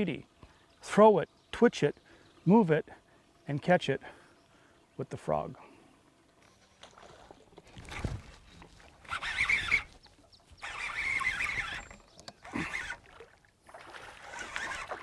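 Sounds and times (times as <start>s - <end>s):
fish splashing in water: 10.6s - 15.0s.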